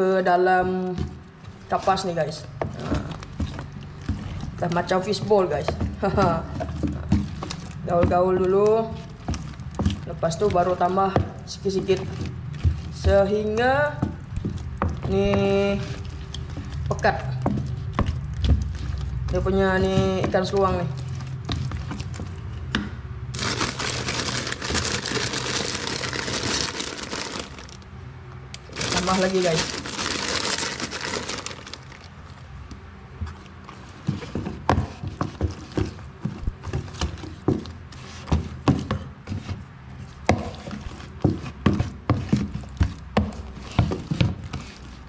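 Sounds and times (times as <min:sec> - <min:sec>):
wooden spoon stirring wet mash: 0:00.0 - 0:27.9, 0:28.6 - 0:45.0
plastic bag crinkling: 0:23.3 - 0:27.8, 0:28.6 - 0:32.4.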